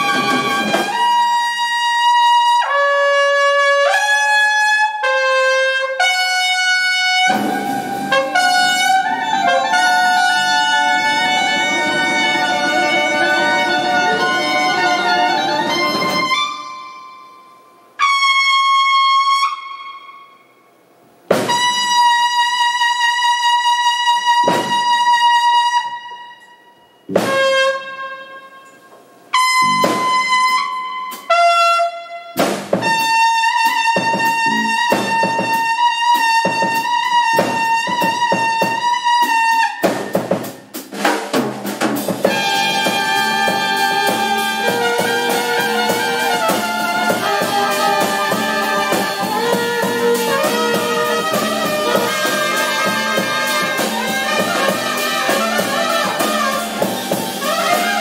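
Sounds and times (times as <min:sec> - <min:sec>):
trumpet playing long notes: 0:00.0 - 0:40.8, 0:42.2 - 0:58.0
horns and band playing: 0:00.0 - 0:58.0.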